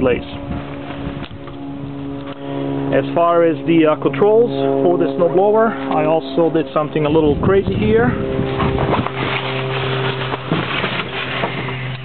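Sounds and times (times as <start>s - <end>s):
lawn tractor engine humming: 0.0s - 12.0s.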